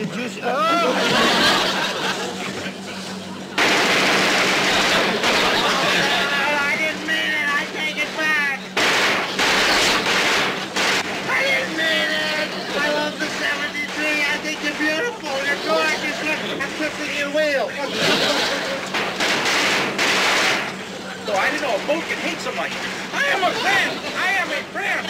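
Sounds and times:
voices: 0.0s - 19.2s, 20.4s - 25.0s
machine-gun fire: 3.6s - 16.8s, 18.0s - 22.4s.

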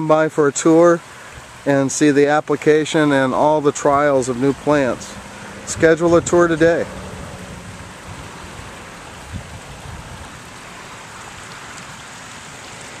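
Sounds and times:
rushing outdoor background noise: 0.0s - 13.0s.

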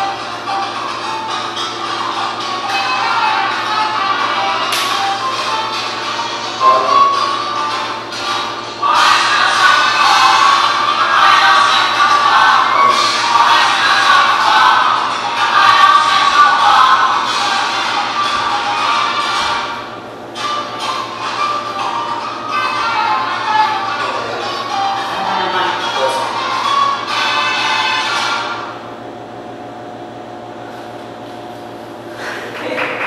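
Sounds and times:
salsa music: 0.0s - 33.0s.

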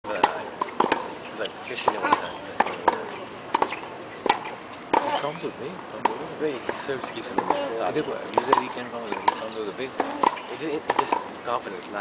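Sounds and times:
tennis ball struck by racket: 0.1s - 5.3s, 6.0s - 11.4s
tennis ball bouncing on hard court: 0.1s - 5.4s, 6.0s - 11.4s.

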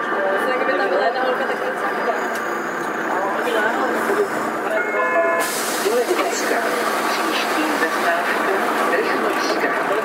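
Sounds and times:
people talking: 0.0s - 2.5s, 3.1s - 5.2s, 5.8s - 10.0s
city bus running: 0.0s - 10.0s.

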